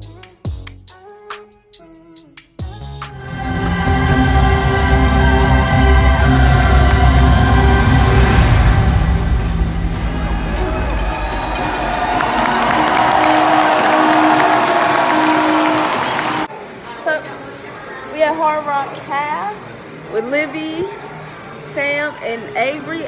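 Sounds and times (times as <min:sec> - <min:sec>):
crowd cheering: 0:03.2 - 0:16.5.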